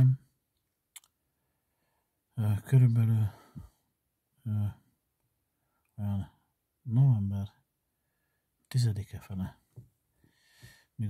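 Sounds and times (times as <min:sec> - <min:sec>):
man speaking: 0:00.0 - 0:00.3, 0:02.4 - 0:03.5, 0:04.4 - 0:04.8, 0:06.0 - 0:07.6, 0:08.7 - 0:09.6.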